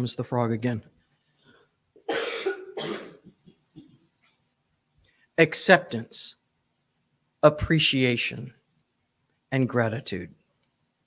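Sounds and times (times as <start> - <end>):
woman coughing: 2.0 - 3.9.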